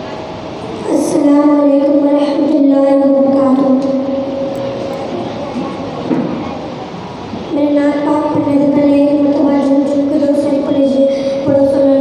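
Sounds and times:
noisy hall background: 0.0 - 12.0.

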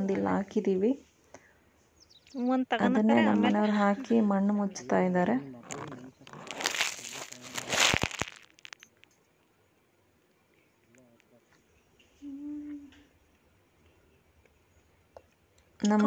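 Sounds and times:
dry soil crumbling between hands: 5.6 - 9.2
man humming hmm: 12.2 - 12.9.

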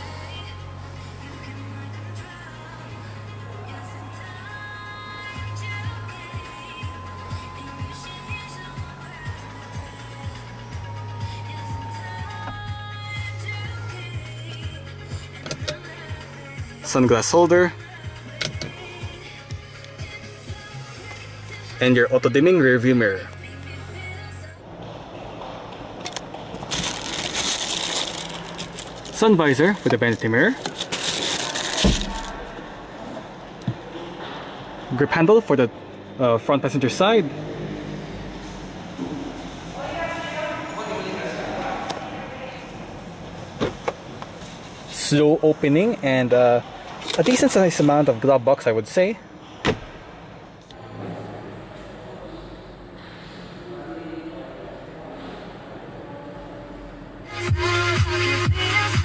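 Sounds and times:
background music with steady beat: 0.0 - 26.3, 57.3 - 59.0
glove box latch clicks: 15.4 - 15.8, 18.4 - 18.7.

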